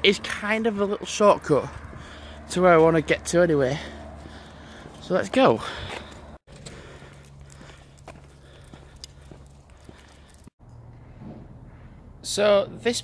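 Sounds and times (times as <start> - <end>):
footsteps on paved road: 0.1 - 12.0.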